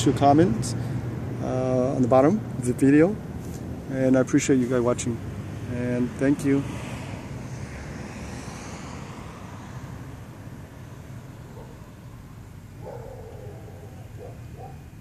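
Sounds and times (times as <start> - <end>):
distant road traffic rumble: 0.0 - 15.0.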